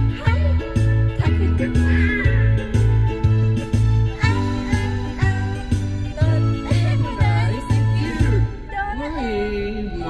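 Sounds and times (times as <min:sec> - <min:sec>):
amplified backing track: 0:00.0 - 0:10.0.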